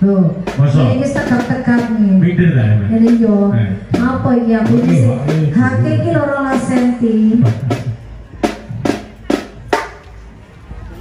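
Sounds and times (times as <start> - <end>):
marching percussion strikes: 0.0 - 10.4.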